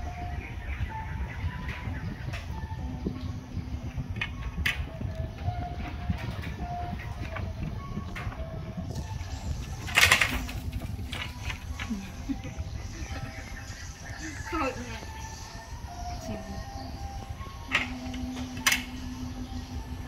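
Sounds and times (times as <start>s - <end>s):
doves cooing: 0.0s - 20.0s.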